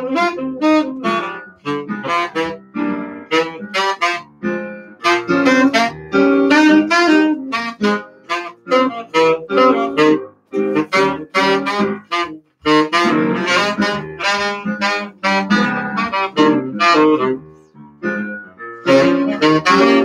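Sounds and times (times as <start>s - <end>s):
piano accompaniment: 0.0s - 20.0s
saxophone jazz melody: 0.0s - 20.0s.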